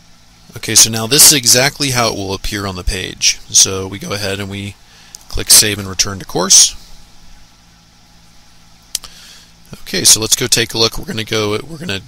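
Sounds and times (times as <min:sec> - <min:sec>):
low electrical hum: 0:00.0 - 0:12.0
light hiss: 0:03.2 - 0:10.6
sharp click: 0:08.9 - 0:09.1.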